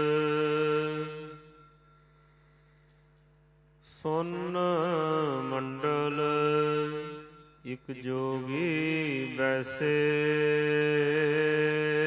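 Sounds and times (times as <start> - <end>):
man chanting melodic recitation: 0.0 - 1.7, 3.9 - 12.0.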